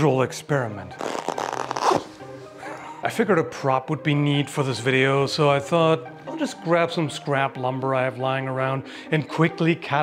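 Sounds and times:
music: 0:00.0 - 0:10.0
glove rubbing on glove: 0:01.0 - 0:02.4.

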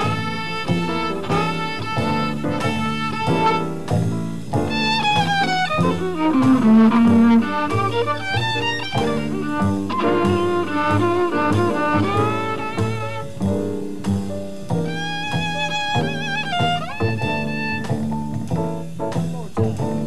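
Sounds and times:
bowed violin jazz solo: 0:00.0 - 0:20.0
upright bass line: 0:00.0 - 0:20.0.

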